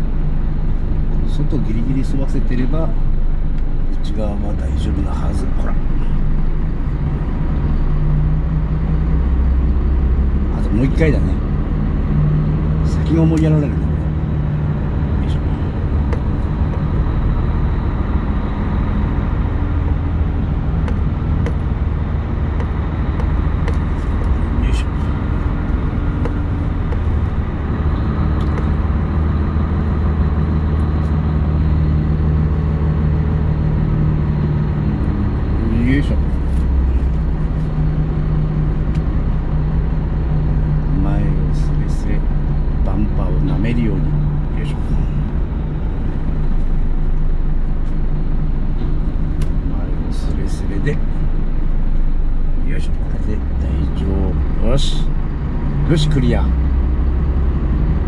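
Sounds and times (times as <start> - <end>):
diesel truck engine running: 0.0 - 58.0.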